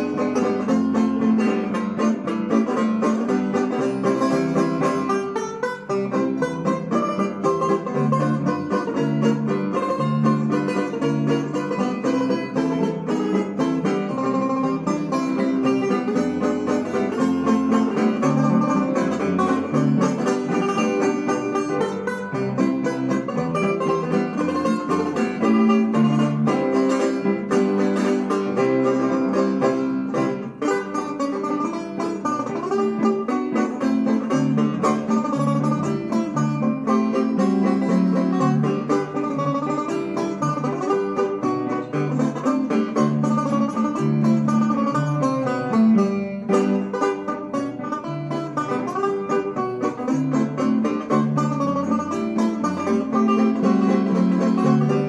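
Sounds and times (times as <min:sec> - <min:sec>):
banjo playing jazz: 0:00.0 - 0:55.0
walking bass notes: 0:00.0 - 0:55.0.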